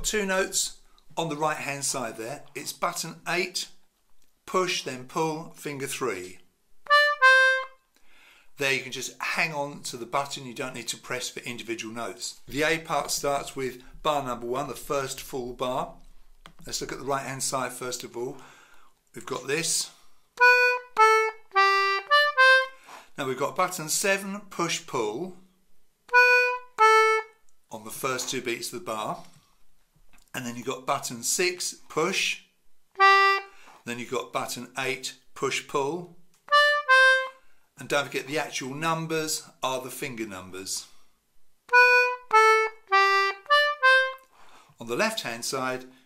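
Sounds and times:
concertina notes: 6.9s - 7.8s, 20.4s - 22.8s, 26.1s - 27.4s, 33.0s - 33.6s, 36.5s - 37.4s, 41.7s - 44.3s.

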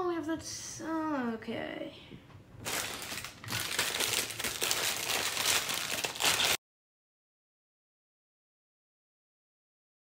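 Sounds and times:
plastic bag crinkling: 2.6s - 6.6s.

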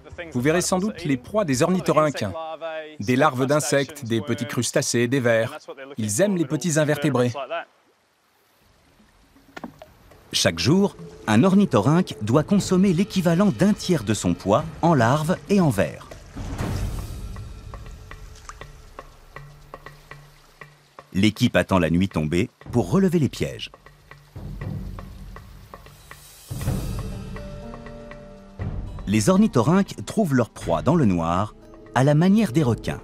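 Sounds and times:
creek water running over rocks: 3.1s - 27.8s
water drops plopping into creek: 9.0s - 11.2s, 15.2s - 21.2s.

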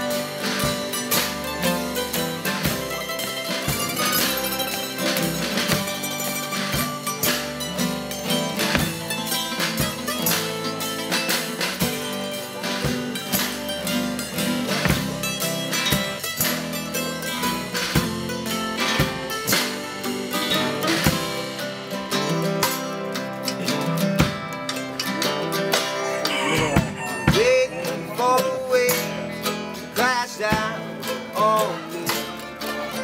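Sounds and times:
acoustic guitars strumming: 0.0s - 33.0s
drum kit beat: 0.0s - 33.0s
mandolin strumming: 0.0s - 33.0s
upright bass: 0.0s - 33.0s.

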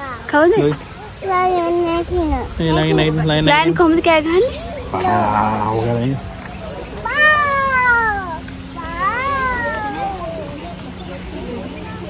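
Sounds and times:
animal meow-like cry: 7.0s - 10.5s.

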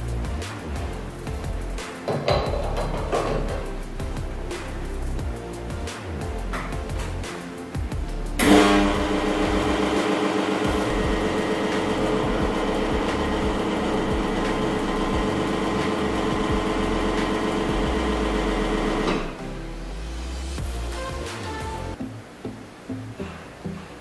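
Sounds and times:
espresso machine pump humming: 8.8s - 19.3s.

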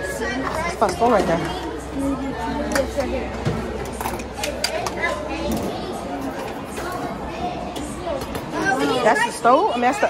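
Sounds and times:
background voices chattering: 0.0s - 10.0s.

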